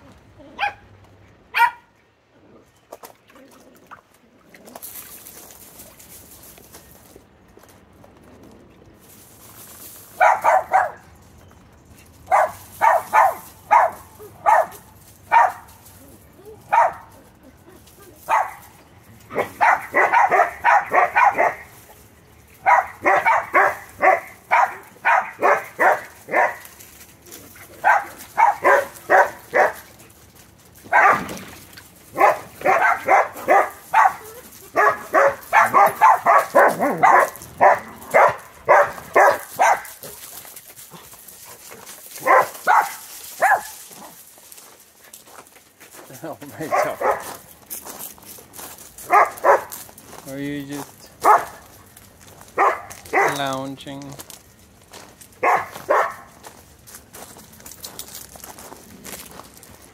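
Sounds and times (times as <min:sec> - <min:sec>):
dog barking rapidly: 0:01.5 - 0:01.9, 0:10.2 - 0:11.0, 0:12.3 - 0:15.7, 0:16.7 - 0:17.1, 0:18.3 - 0:18.6, 0:19.3 - 0:21.7, 0:22.6 - 0:26.6, 0:27.8 - 0:29.8, 0:30.9 - 0:31.3, 0:32.1 - 0:39.9, 0:42.2 - 0:43.8, 0:46.6 - 0:47.3, 0:49.1 - 0:49.7, 0:51.2 - 0:51.6, 0:52.6 - 0:53.4, 0:55.4 - 0:56.3.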